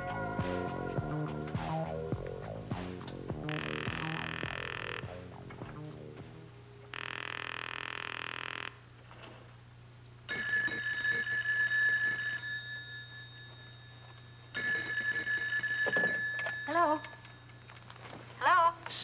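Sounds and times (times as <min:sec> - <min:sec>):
desk telephone ringing: 0:10.3 - 0:18.2
woman's voice: 0:16.7 - 0:17.1, 0:18.4 - 0:19.0.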